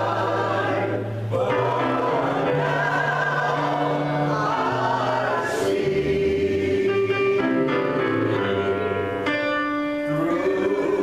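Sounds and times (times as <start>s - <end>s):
choir singing a slow hymn: 0.0s - 9.1s, 10.0s - 11.0s
electric keyboard accompaniment: 0.0s - 11.0s.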